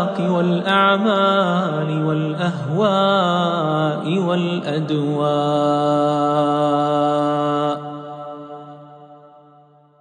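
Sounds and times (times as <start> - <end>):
man chanting held note with echo: 0.0 - 9.4.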